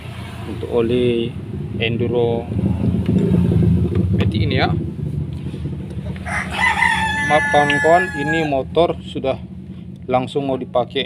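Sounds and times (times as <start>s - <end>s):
steady low hum: 0.0s - 11.0s
rooster crowing: 6.1s - 8.6s.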